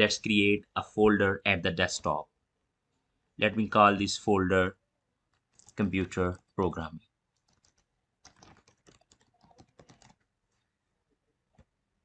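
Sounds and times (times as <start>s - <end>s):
computer keyboard typing: 5.3s - 6.6s, 7.3s - 10.3s.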